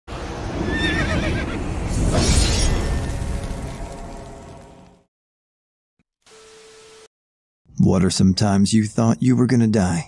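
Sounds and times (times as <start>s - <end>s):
horse whinnying: 0.6s - 1.6s.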